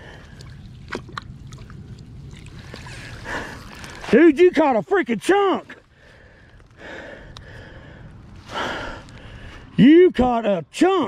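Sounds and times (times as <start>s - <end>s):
person taking loud breath: 5.9s - 9.7s.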